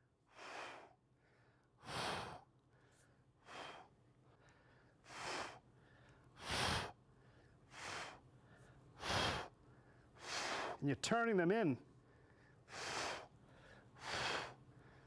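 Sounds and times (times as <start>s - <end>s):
man breathing hard: 0.0s - 10.8s, 12.0s - 15.0s.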